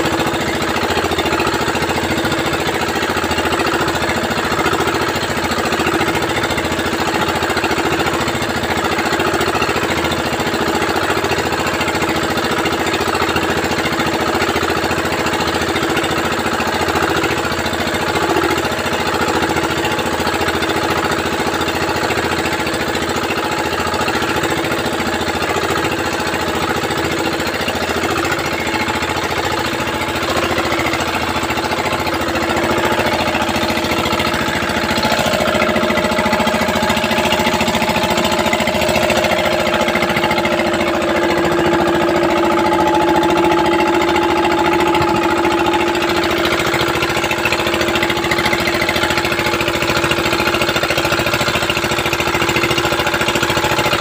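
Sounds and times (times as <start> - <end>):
small boat engine running: 0.0 - 54.0.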